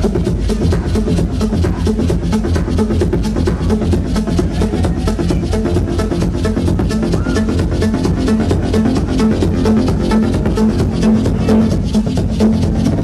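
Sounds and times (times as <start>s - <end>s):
electronic dance music: 0.0s - 13.0s
pulsing bass drum: 0.0s - 13.0s.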